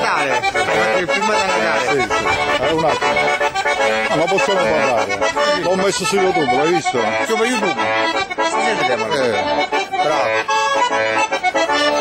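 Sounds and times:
accordion folk tune: 0.0s - 12.0s.

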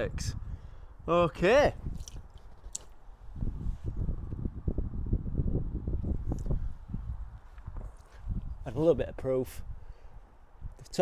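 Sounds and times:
microphone rumbling and rustling: 1.8s - 9.3s.

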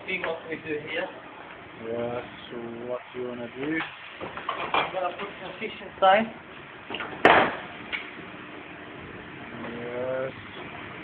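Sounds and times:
steady low hum: 0.0s - 11.0s
sharp knock: 7.2s - 7.7s.

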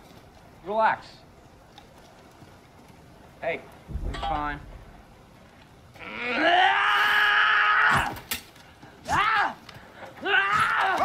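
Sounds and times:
man screaming: 6.0s - 8.2s, 10.2s - 11.0s.

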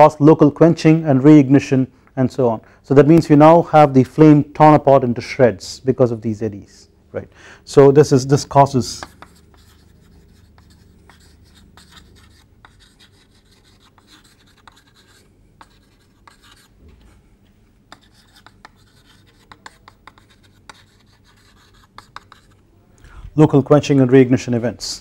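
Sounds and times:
low room hum: 0.0s - 25.0s
chalk on chalkboard: 8.9s - 16.7s, 17.9s - 22.6s.

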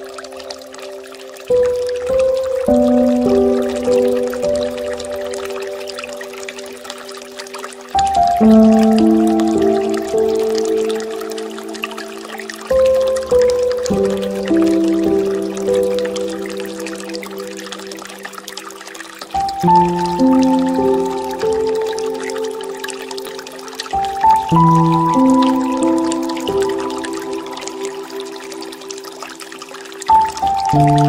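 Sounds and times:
soft piano music: 0.0s - 31.0s
water fountain trickling: 0.0s - 31.0s.

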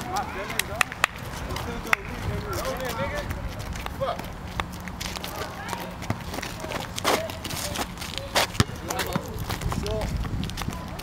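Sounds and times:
basketball bouncing: 8.5s - 9.8s.

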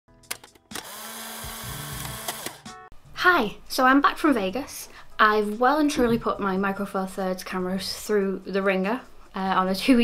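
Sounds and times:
mechanical whirring buzz: 0.8s - 2.6s
sharp clicks: 2.0s - 2.6s.

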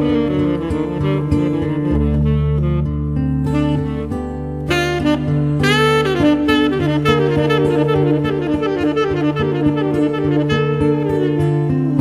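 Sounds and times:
jazz guitar: 0.0s - 12.0s
saxophone: 0.0s - 12.0s.

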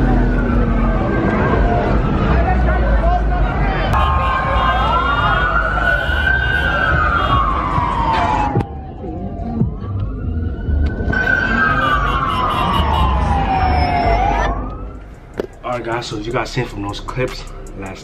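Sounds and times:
police siren wailing: 0.0s - 3.0s, 3.9s - 15.2s.

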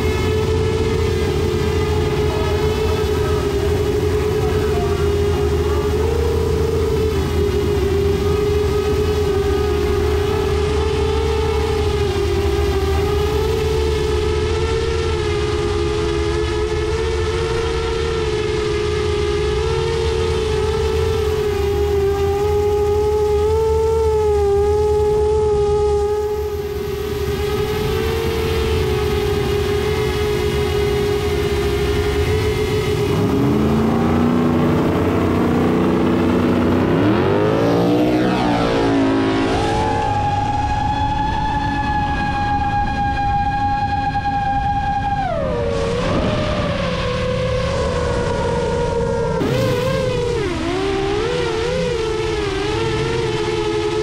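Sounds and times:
drone motors whining: 0.0s - 54.0s
idling car engines rumbling: 0.0s - 54.0s.

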